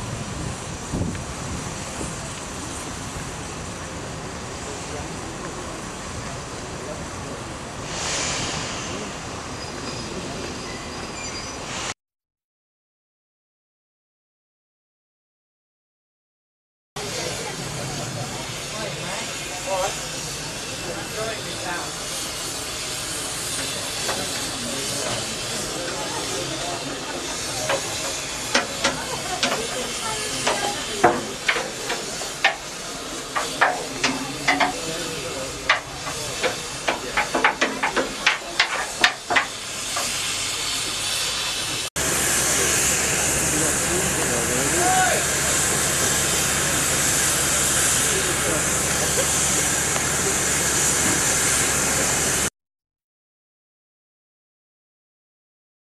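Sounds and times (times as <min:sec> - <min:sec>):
steam hissing: 0:00.0 - 0:12.0, 0:17.0 - 0:52.5
metallic clanks and knocks: 0:33.4 - 0:34.8, 0:35.7 - 0:39.5.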